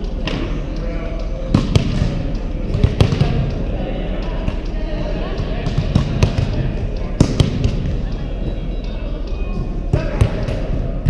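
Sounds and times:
volleyballs smacking in hall: 1.5s - 3.7s, 4.4s - 8.6s, 9.6s - 11.0s.

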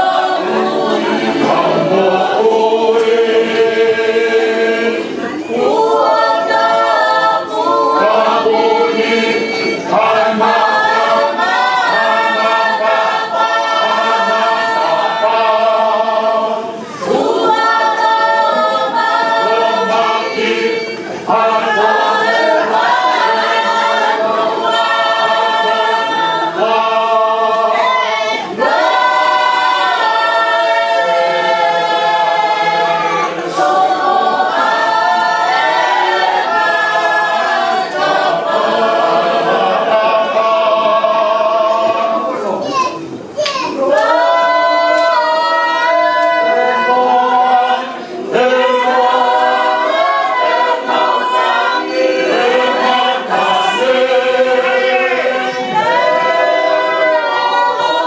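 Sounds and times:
choir singing a cappella: 0.0s - 58.0s.

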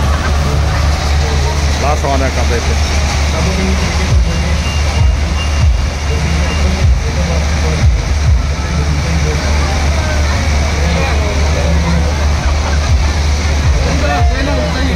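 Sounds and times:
crowd chatter: 0.0s - 14.9s
falling bass sweeps: 0.0s - 14.9s
loud music with heavy bass: 0.0s - 14.9s.

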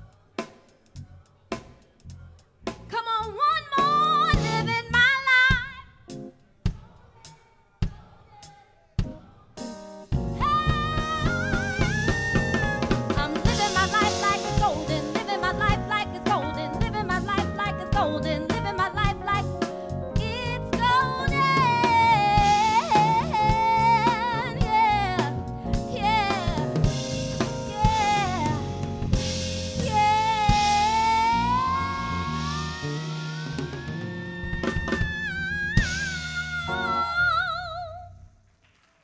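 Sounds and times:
live band: 0.3s - 6.4s, 9.0s - 38.0s
woman singing soul: 2.9s - 5.8s, 10.4s - 28.9s, 29.8s - 38.1s
drum hits: 10.2s - 16.0s.

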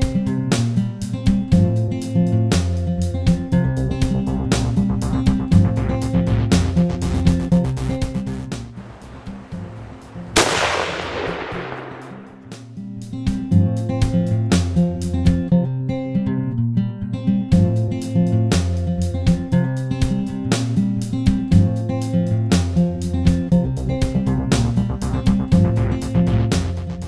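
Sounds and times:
music with guitar and beat: 0.0s - 8.8s, 13.0s - 27.0s
rifle shot: 8.8s - 12.6s.

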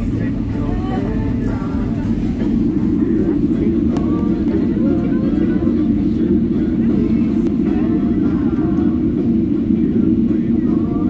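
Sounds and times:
airliner cabin rumble: 0.0s - 11.0s.

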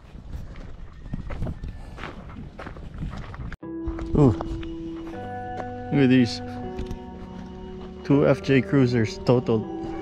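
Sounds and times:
footsteps on gravel: 0.0s - 8.7s.

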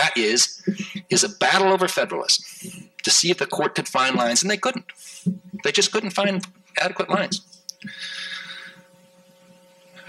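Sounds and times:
faint videotape hum: 0.0s - 10.0s
constant tones: 0.1s - 1.7s, 2.5s - 10.0s
breath into microphone: 2.5s - 2.9s.

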